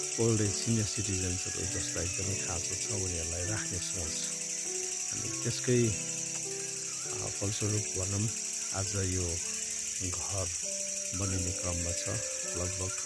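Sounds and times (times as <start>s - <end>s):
high-pitched pulsing buzz: 0.0s - 13.0s
man talking: 0.1s - 4.4s, 5.1s - 6.0s, 7.1s - 9.4s, 10.0s - 13.0s.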